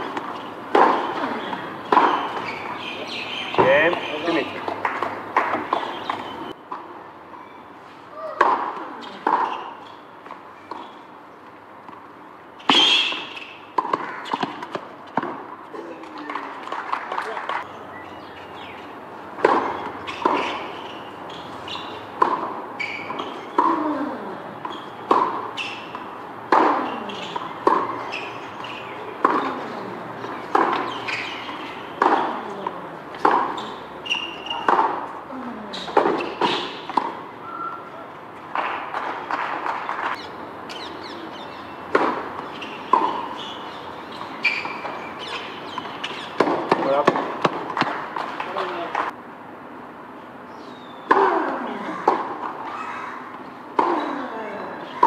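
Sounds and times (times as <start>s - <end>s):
tennis racquet hitting ball: 0.0s - 6.3s, 8.4s - 9.6s, 12.6s - 15.6s, 19.4s - 23.9s, 24.6s - 35.2s, 35.8s - 37.3s, 41.6s - 49.1s, 51.0s - 52.7s, 53.4s - 54.2s
tennis ball bouncing: 0.0s - 6.9s, 8.4s - 11.0s, 11.8s - 17.7s, 18.5s - 23.9s, 24.6s - 37.3s, 38.4s - 49.2s, 51.0s - 55.0s.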